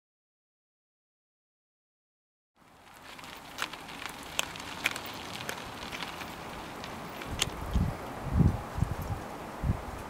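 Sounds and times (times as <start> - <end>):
bike tyres rolling on dirt: 2.6 - 10.0
sharp clicks and crackles: 2.9 - 7.8.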